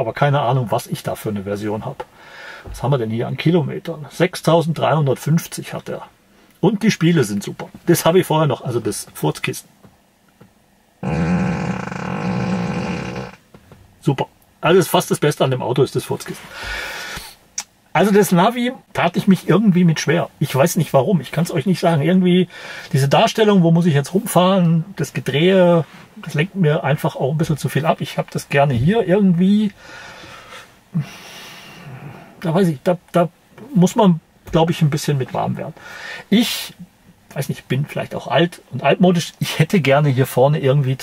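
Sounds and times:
man breathing: 2.1s - 2.8s, 16.5s - 17.4s, 22.5s - 22.9s, 29.8s - 32.4s, 35.8s - 36.3s
long fart sound through speakers: 11.0s - 13.4s.

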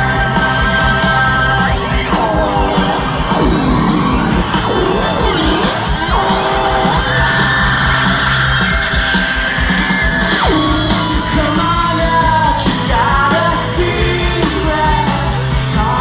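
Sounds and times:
rock band playing loud: 0.0s - 16.0s
sliding pitch glides: 2.2s - 13.8s.

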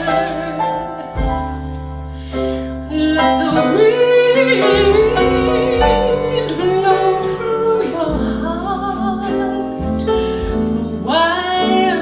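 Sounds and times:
double bass notes: 0.0s - 12.0s
woman singing a slow ballad: 0.0s - 12.0s.

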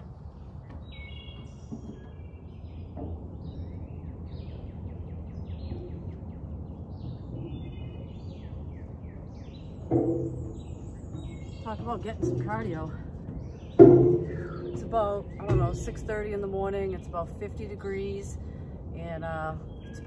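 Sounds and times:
low steady background noise: 0.0s - 20.0s
songbirds chirping: 0.0s - 20.0s.

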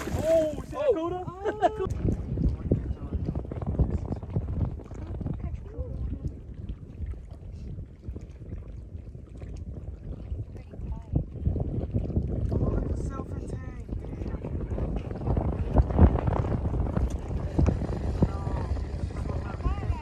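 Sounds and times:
wind buffeting microphone: 0.0s - 20.0s
faint voices: 14.2s - 20.0s.

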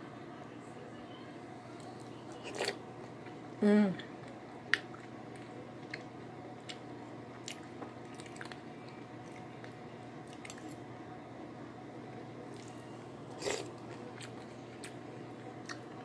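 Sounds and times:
steady low hum: 0.0s - 16.0s
person chewing food: 4.2s - 10.8s, 12.5s - 16.0s.

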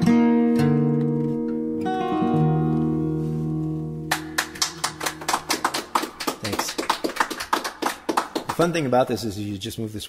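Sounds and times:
guitar chord: 0.0s - 5.4s
audience applause: 4.1s - 8.9s.

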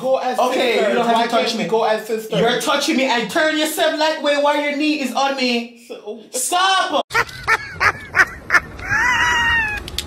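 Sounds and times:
high-pitched yelps: 8.2s - 9.9s
whiny cry: 8.5s - 9.9s.

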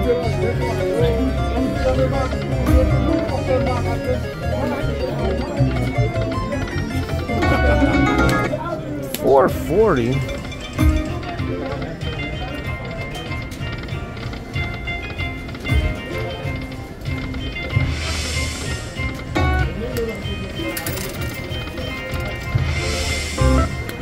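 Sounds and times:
slot machine music and effects: 2.4s - 8.6s, 9.2s - 11.3s, 20.5s - 24.0s.

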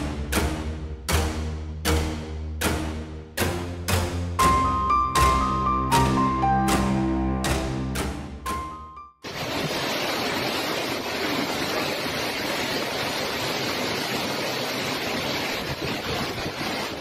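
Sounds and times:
heavy rain: 9.2s - 17.0s
storm wind: 9.3s - 17.0s
wind buffeting microphone: 15.1s - 17.0s.

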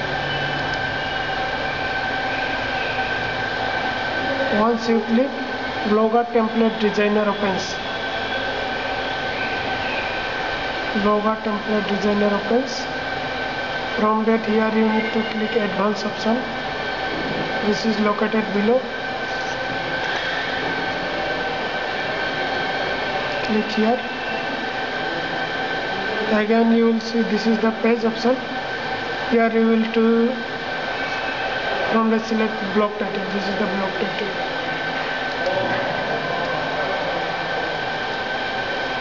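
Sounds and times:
fan hiss: 0.0s - 39.0s
high-pitched whine: 0.0s - 39.0s
machine humming: 0.0s - 39.0s.

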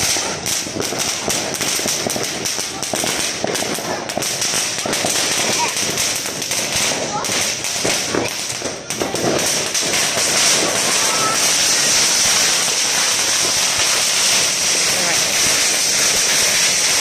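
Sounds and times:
children's voices: 0.0s - 17.0s
firecrackers crackling: 0.0s - 17.0s.

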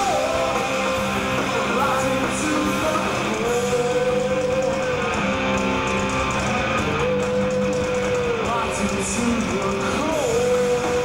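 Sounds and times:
person singing long notes: 0.0s - 5.9s, 6.6s - 11.0s
rock band playing live: 0.0s - 11.0s.

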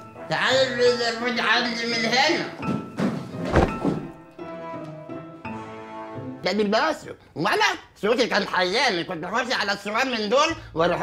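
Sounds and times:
background music: 0.0s - 11.0s
body thudding on floor: 2.6s - 4.3s.

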